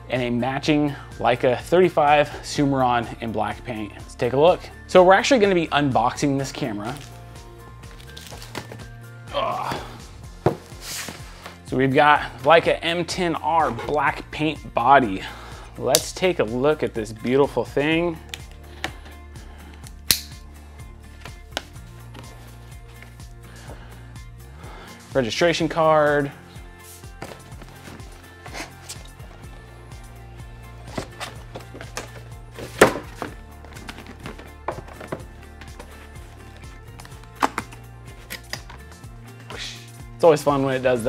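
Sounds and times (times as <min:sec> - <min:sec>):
quiet background music: 0:00.0 - 0:41.0
utility knife cutting box: 0:30.9 - 0:35.9.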